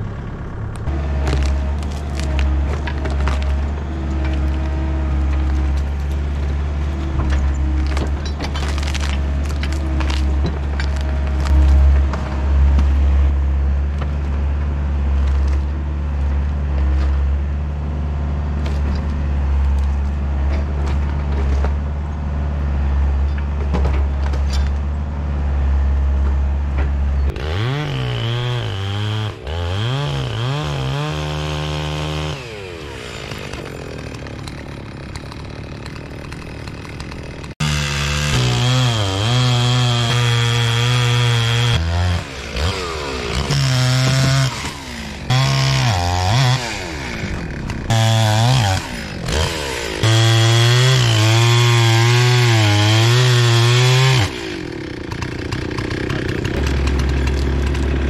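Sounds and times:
diesel engine running: 0.0s - 38.9s, 40.7s - 58.0s
chainsaw revving and cutting: 0.9s - 13.2s, 27.3s - 58.0s.

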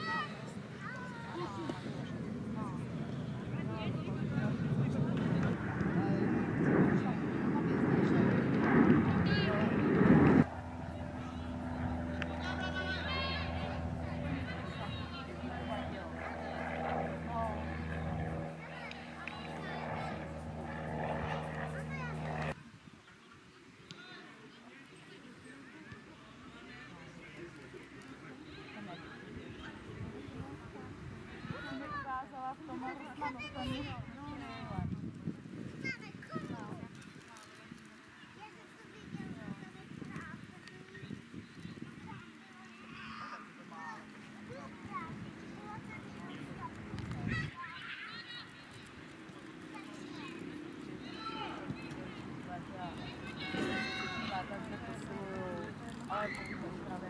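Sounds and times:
open-air background: 0.0s - 57.0s
low rumble on microphone: 1.7s - 22.6s
engine drone: 8.5s - 22.6s
young footballers shouting: 53.0s - 55.2s.

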